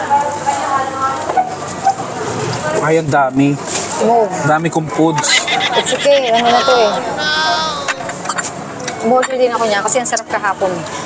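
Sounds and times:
person making bleat-like vocal sound: 5.6 - 8.1
utensils clicking against dishes: 7.9 - 9.4.

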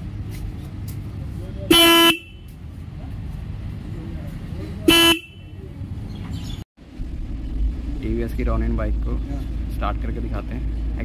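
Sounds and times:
motorcycle horn beeps: 1.7 - 2.6, 4.8 - 5.6.

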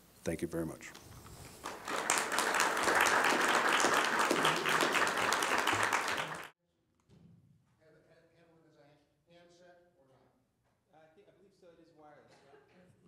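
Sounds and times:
audience applauding: 1.6 - 6.6.

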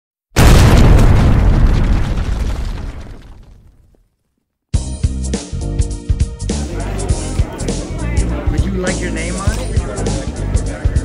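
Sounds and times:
explosion boom: 0.4 - 3.9.

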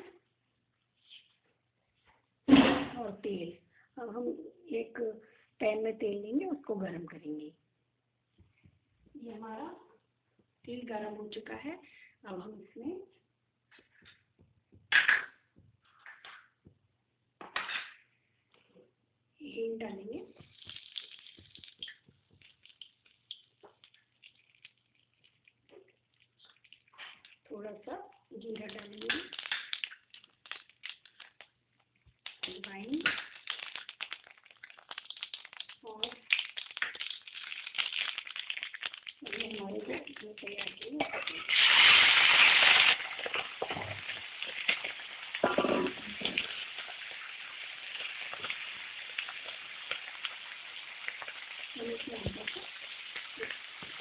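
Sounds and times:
hot oil crackling in a pan: 20.3 - 54.0.

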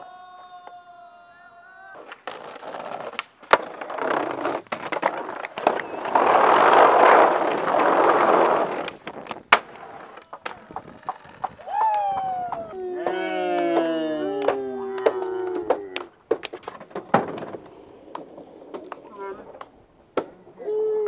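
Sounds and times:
skateboard wheels rolling on pavement: 2.0 - 13.9, 14.5 - 20.2
skateboard clacks: 2.0 - 20.3.

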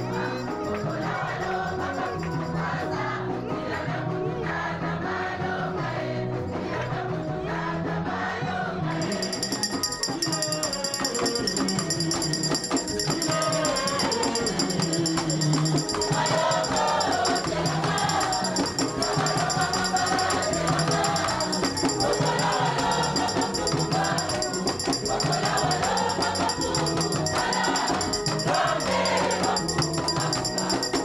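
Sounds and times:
shaken percussion: 0.0 - 2.8, 8.9 - 31.0
congregation singing a hymn: 0.0 - 31.0.

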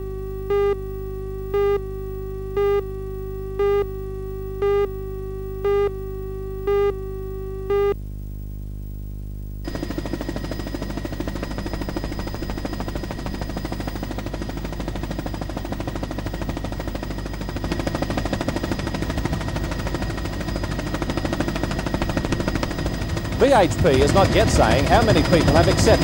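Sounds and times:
high whine: 0.0 - 26.0
helicopter rotor chop: 9.7 - 26.0.

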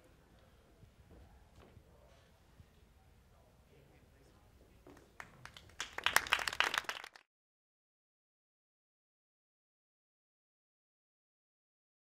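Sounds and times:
audience applause: 5.2 - 7.3.

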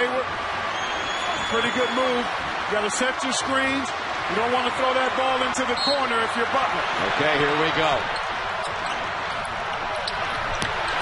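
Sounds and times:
arena crowd din: 0.0 - 11.0.

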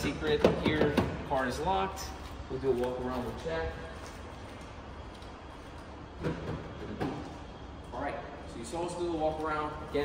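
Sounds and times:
low rumble of parking garage: 0.0 - 10.0.

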